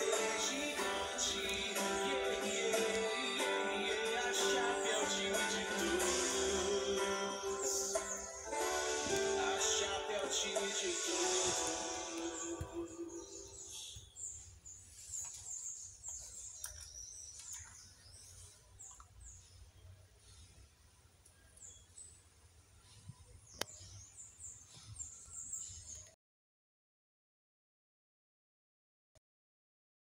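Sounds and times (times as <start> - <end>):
background music: 0.0 - 13.7
high bird chirps: 0.0 - 18.0.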